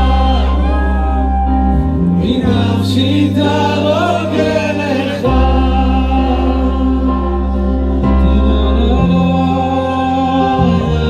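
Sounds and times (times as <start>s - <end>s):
amplified backing music: 0.0s - 11.0s
man singing through microphone: 0.0s - 11.0s
men singing along: 0.0s - 11.0s.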